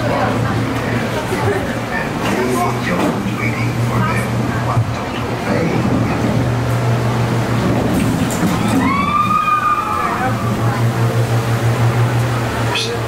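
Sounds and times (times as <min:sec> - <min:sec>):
low hum: 0:02.6 - 0:13.0.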